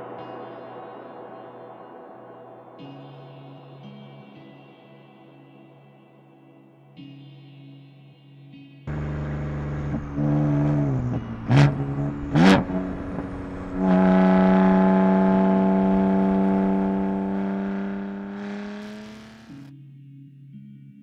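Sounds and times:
car engine revving: 8.9 - 19.7.

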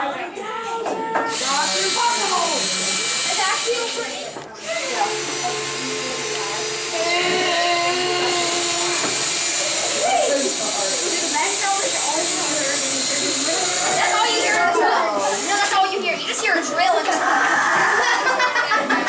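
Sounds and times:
children chattering: 0.0 - 19.0
cordless drill whirring: 1.2 - 16.2.

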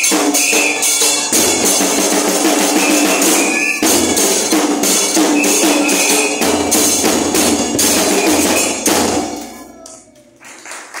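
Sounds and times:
cymbal strokes: 0.0 - 9.8
bass drums: 1.3 - 9.7.

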